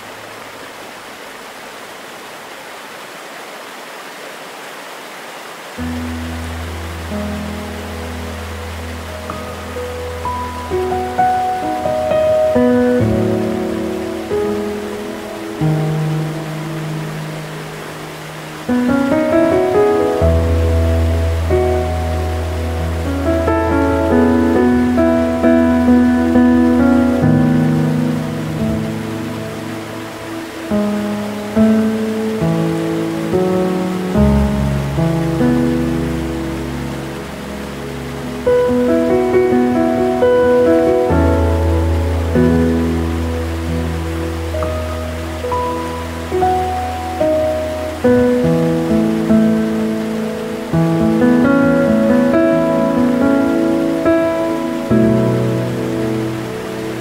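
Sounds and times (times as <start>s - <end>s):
rushing water hiss: 0.0s - 57.0s
slow gentle piano music: 5.7s - 57.0s.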